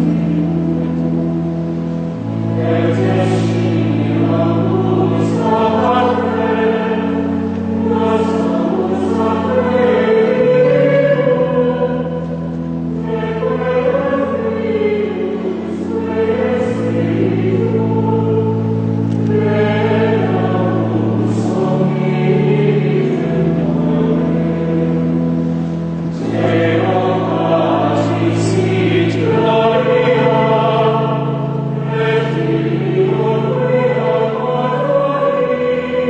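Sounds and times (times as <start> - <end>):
choir singing a chant: 0.0 - 1.0, 2.2 - 36.0
low held notes: 0.0 - 36.0.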